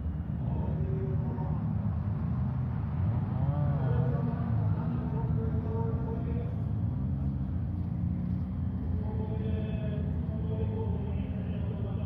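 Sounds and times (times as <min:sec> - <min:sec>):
rally car engines rumbling: 0:00.0 - 0:12.0
engine revving: 0:00.5 - 0:12.0.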